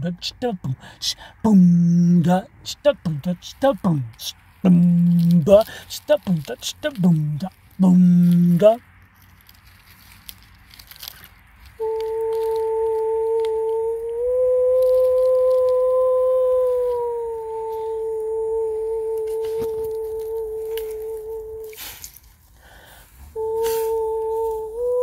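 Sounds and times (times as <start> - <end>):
voice holding high pure note: 11.8 - 22.0, 23.3 - 25.0.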